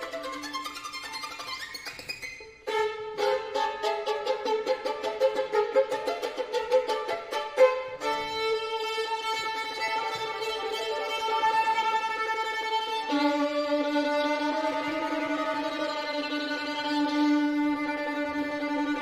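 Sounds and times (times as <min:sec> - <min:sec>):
solo violin playing: 0:00.0 - 0:19.0.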